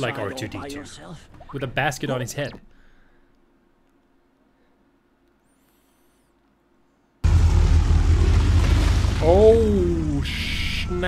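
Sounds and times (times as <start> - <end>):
loud deep rumble: 7.2 - 10.8.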